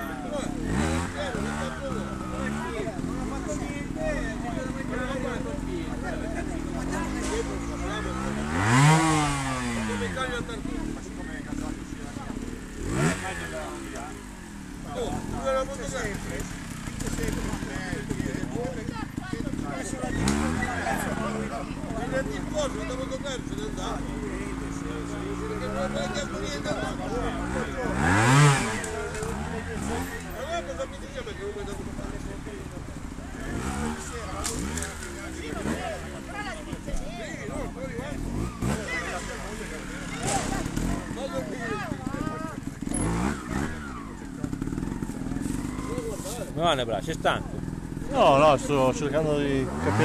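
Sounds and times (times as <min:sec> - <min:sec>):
motorcycle engine revving: 0:00.0 - 0:50.0.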